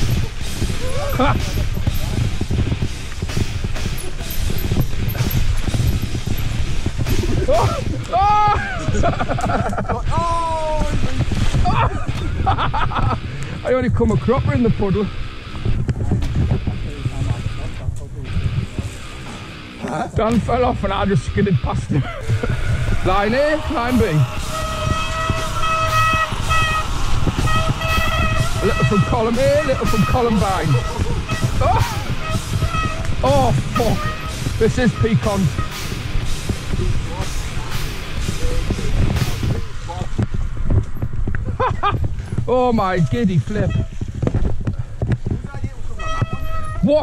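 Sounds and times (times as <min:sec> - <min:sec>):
bike tyres on muddy ground: 0:00.0 - 0:47.0
wind rumble on microphone: 0:00.0 - 0:47.0
rider shouting: 0:21.9 - 0:35.7.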